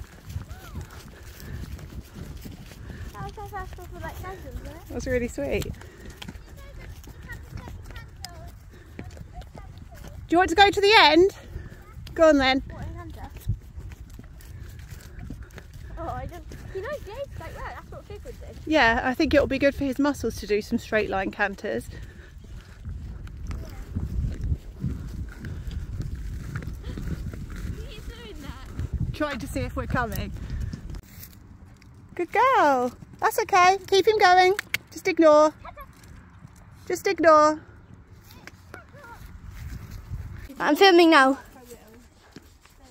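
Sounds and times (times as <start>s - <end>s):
horse hoofbeats: 0.0s - 42.9s.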